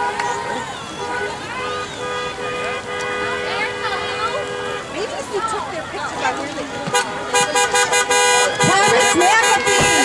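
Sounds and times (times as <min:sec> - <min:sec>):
car horn honking: 0:00.0 - 0:10.0
voices shouting and cheering: 0:00.0 - 0:10.0.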